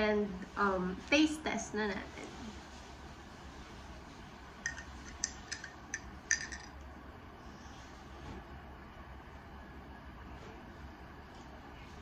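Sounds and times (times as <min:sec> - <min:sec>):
metal straw clinking on glass: 0:04.7 - 0:06.8.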